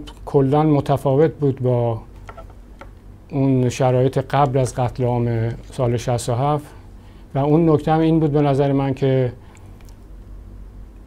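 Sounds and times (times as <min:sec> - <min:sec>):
man speaking: 0:00.0 - 0:02.1, 0:03.3 - 0:09.4
low room noise: 0:00.0 - 0:11.0.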